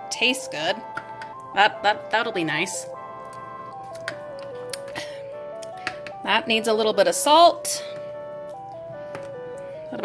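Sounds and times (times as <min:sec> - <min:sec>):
slow melody over sustained chords: 0:00.0 - 0:10.0.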